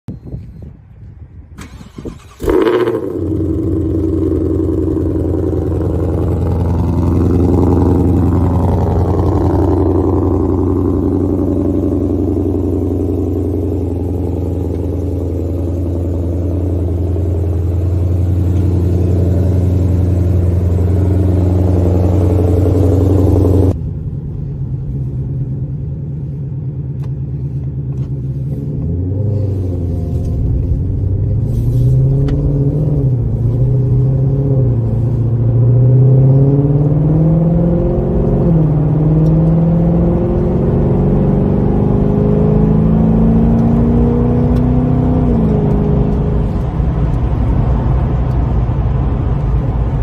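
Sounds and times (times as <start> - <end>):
engine low uneven rumble: 0.1 - 50.0.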